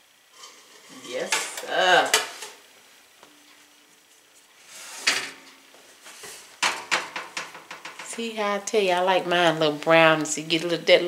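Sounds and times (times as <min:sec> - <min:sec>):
sharp knocks of oven handling: 0:06.6 - 0:08.1.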